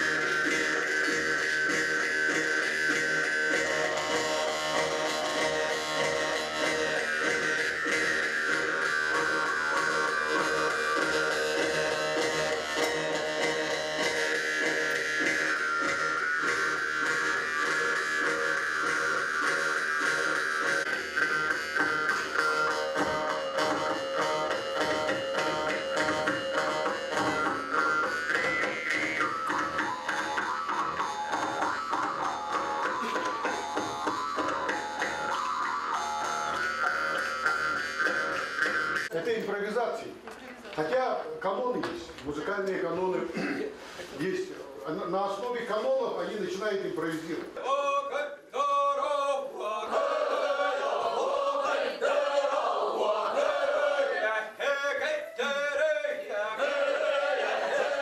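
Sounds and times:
jaw harps buzzing drone: 0.0s - 39.1s.

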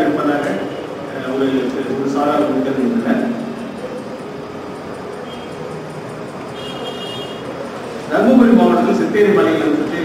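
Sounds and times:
lecture hall room noise: 0.0s - 10.0s.

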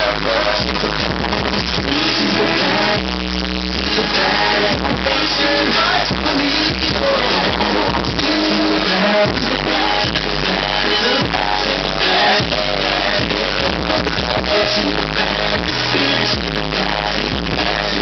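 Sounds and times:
hip-hop track with vocals: 0.0s - 18.0s.

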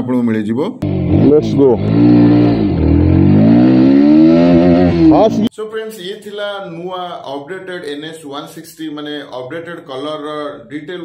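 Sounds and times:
motorcycle engine accelerating: 0.8s - 5.5s.

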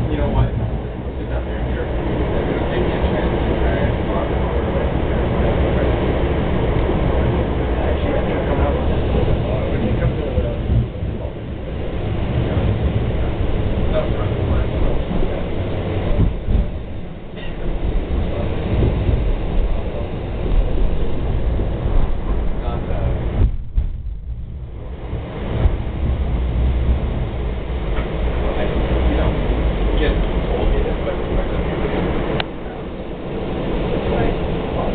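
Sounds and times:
passengers talking: 0.0s - 24.0s, 24.6s - 34.9s
train wheels rumbling on track: 0.0s - 34.9s.

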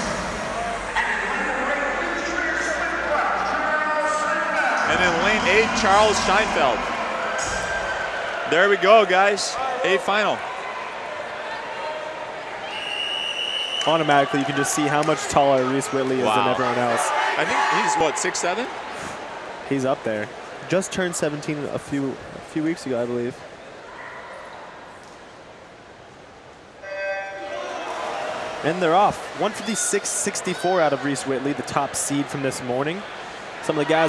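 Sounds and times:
crowd chatter: 0.0s - 25.0s, 26.8s - 34.0s
whistle long blast: 12.7s - 14.0s.

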